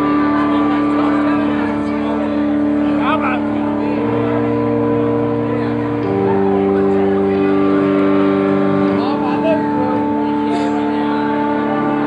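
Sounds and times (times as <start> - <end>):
band playing droning chord: 0.0 - 12.0.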